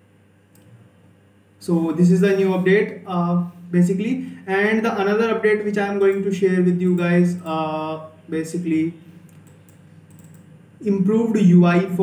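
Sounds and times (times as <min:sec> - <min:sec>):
faint computer clicks: 0:00.5 - 0:00.8, 0:05.9 - 0:07.6, 0:09.2 - 0:10.5.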